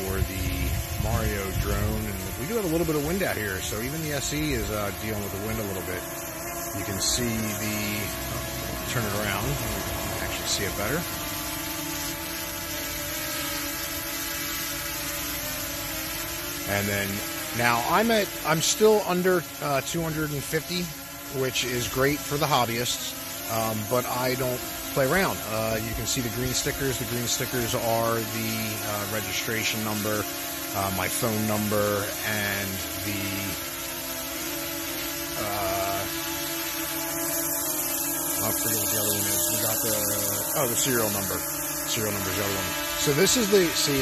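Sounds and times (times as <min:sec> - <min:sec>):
drone propeller hum: 0:00.0 - 0:44.0.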